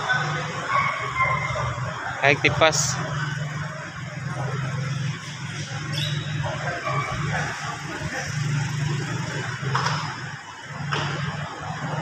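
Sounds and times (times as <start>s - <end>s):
faint voices: 0.0s - 9.7s.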